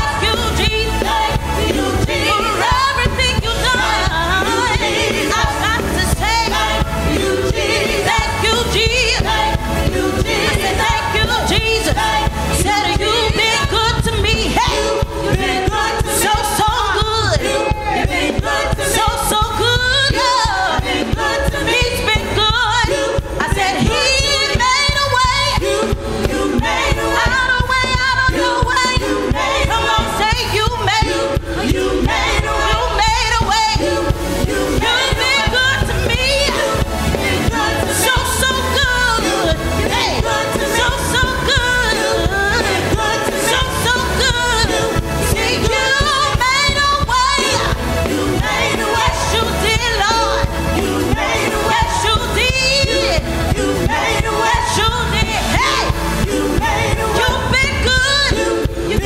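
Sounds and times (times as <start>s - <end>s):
group singing gospel song: 0.0s - 59.0s
instrumental accompaniment with beat: 0.0s - 59.0s.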